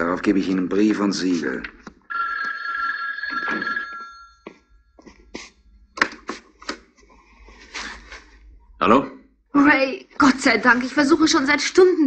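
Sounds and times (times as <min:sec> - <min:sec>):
telephone bell ringing: 0:02.1 - 0:04.9.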